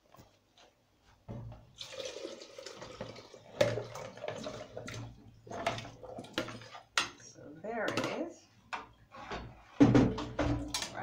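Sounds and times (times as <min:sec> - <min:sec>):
water splashing into a pot: 0:01.7 - 0:07.2.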